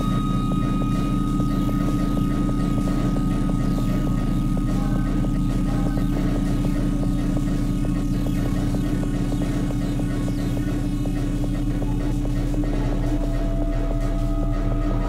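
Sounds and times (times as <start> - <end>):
sustained high tone: 0.0 - 11.0
low throbbing drone rumble: 0.0 - 15.0.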